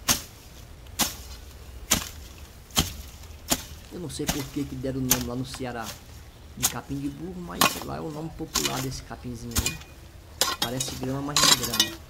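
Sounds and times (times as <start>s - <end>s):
hand hoe chopping soil: 0.0s - 12.0s.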